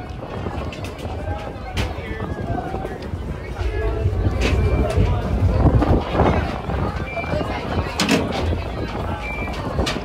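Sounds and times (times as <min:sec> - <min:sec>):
low rumble: 0:00.0 - 0:09.8
background voices: 0:00.0 - 0:10.0.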